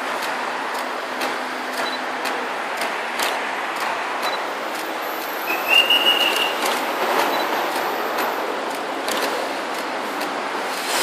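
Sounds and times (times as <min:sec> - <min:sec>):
buses and cars passing: 0:00.0 - 0:11.0
short high-pitched squeal: 0:05.4 - 0:06.7.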